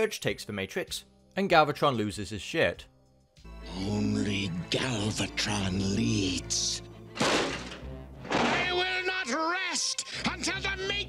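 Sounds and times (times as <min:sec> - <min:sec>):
music: 0:00.0 - 0:11.0
heavy cartoon impacts: 0:07.2 - 0:08.8.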